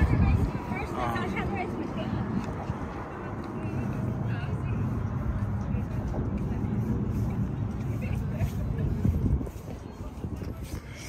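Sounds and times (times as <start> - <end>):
faint voices: 0.0 - 11.0
road traffic rumble: 0.0 - 11.0.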